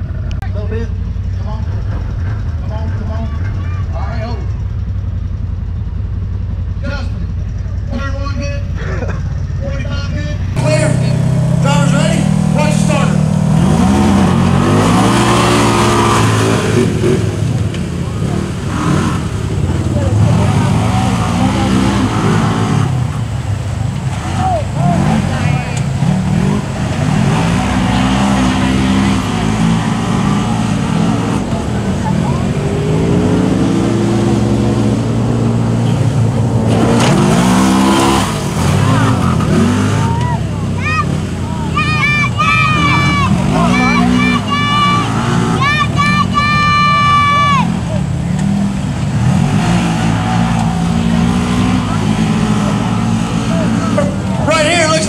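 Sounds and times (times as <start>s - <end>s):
off-road vehicle engines revving: 0.0s - 55.0s.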